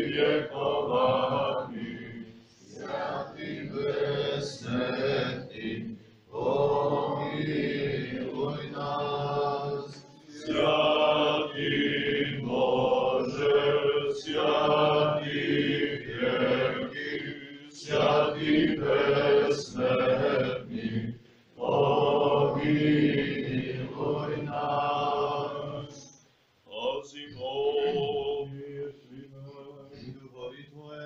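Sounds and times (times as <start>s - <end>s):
men's voices chanting: 0.0s - 26.0s.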